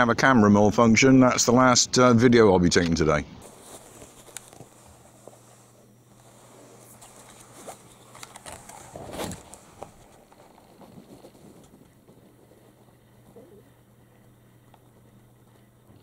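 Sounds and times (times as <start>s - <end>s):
steady low hum: 0.0s - 16.0s
plastic clicks and rustles: 3.9s - 4.8s, 7.0s - 12.8s.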